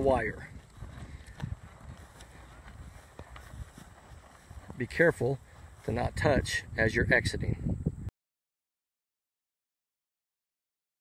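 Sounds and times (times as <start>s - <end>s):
wind rumble on microphone: 0.0s - 8.1s.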